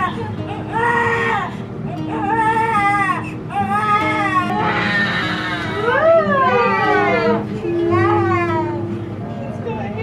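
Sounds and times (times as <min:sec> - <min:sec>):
newborn baby crying: 0:00.0 - 0:08.5
background music: 0:04.0 - 0:09.4.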